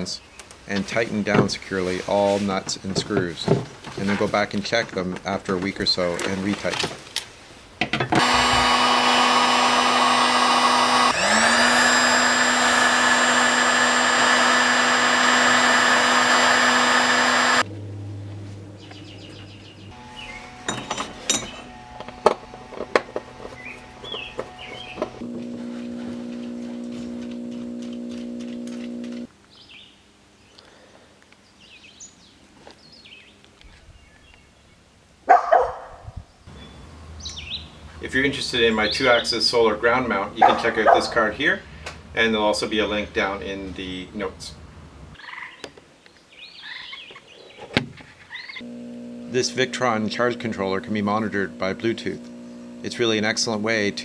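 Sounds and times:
heat gun fan humming: 0:08.1 - 0:17.7, 0:19.9 - 0:29.3, 0:48.6 - 0:54.0
quiet motor hum: 0:08.2 - 0:29.3, 0:48.6 - 0:54.0
hand tools clicking on terminals: 0:26.4 - 0:29.3.

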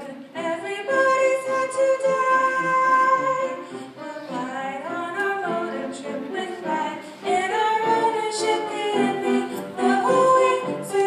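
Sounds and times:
girl singing: 0:04.5 - 0:11.0.

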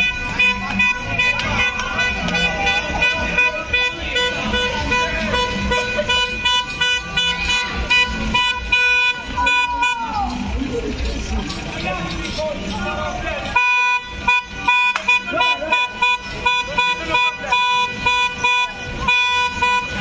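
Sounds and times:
horn long steady note: 0:00.0 - 0:10.5, 0:13.5 - 0:20.0
crowd shouting: 0:00.0 - 0:10.8.

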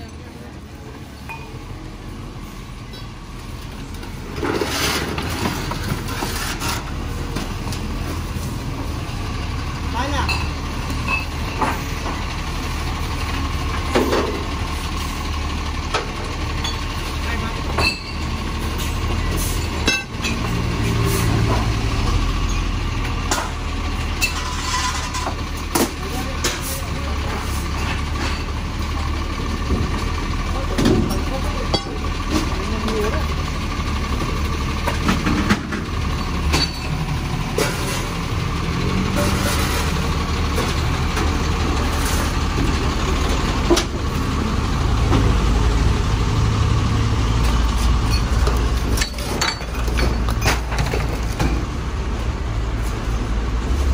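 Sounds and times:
diesel engine idling: 0:00.0 - 0:53.9
wooden debris clattering: 0:48.1 - 0:51.7.

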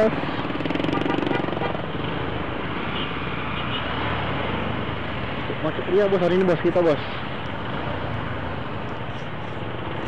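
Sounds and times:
traffic jam noise: 0:00.0 - 0:10.0.

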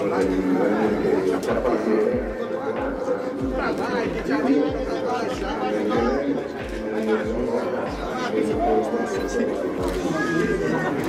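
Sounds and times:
people chattering: 0:00.0 - 0:11.0
background music with bass beat: 0:00.2 - 0:09.3.

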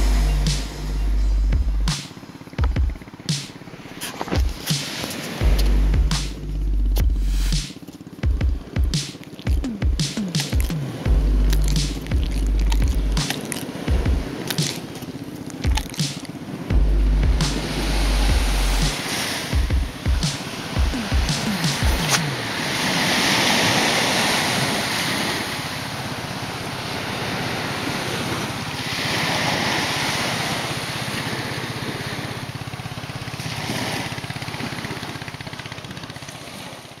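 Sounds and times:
surf washing on a beach: 0:02.0 - 0:05.5, 0:17.6 - 0:37.0.

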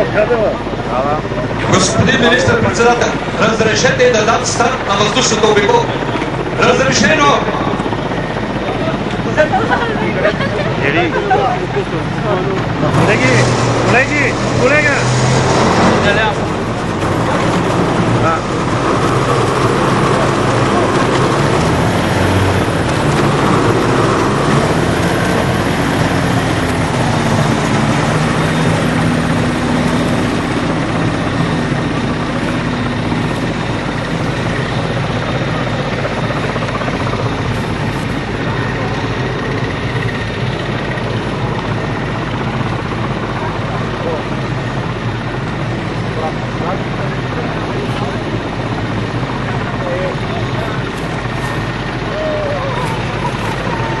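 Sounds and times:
propeller plane engine running: 0:00.0 - 0:54.0.

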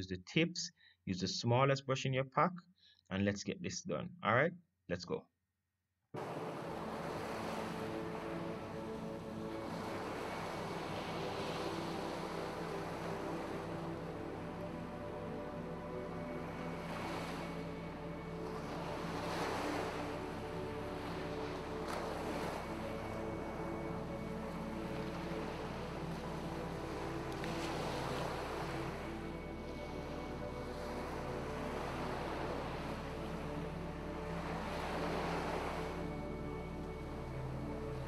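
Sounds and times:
calm background music: 0:06.2 - 0:38.0
ocean waves: 0:06.2 - 0:38.0.

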